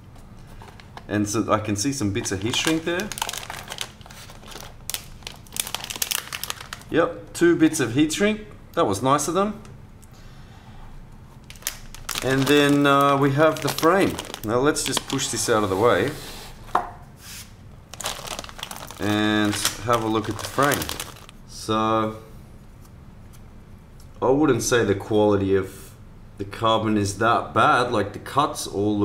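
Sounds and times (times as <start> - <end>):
plastic bag crinkling: 2.2 - 6.9, 11.4 - 16.1, 17.9 - 21.4.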